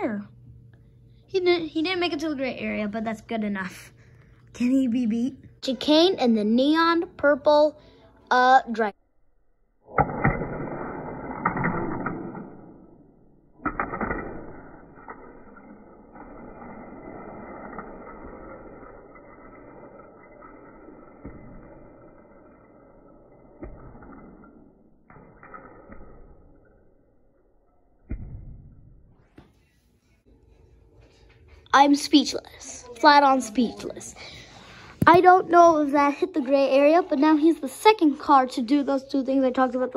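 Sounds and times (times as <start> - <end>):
toy car rolling on plastic track: 16.0 - 22.7.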